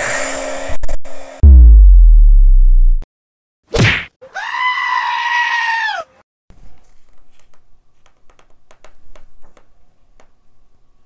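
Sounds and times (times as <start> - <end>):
goat-like bleat: 4.2 - 6.1.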